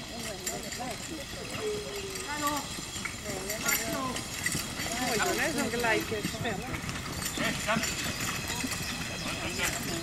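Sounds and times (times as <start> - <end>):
horse hoofbeats on grass: 0.0 - 10.0
spectators talking: 0.0 - 10.0.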